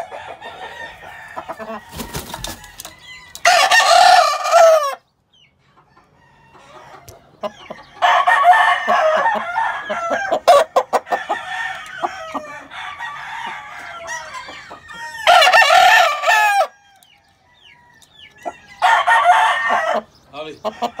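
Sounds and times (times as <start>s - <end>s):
roosters crowing: 0.0s - 5.1s, 5.7s - 21.0s
chickens clucking and calling: 0.0s - 21.0s.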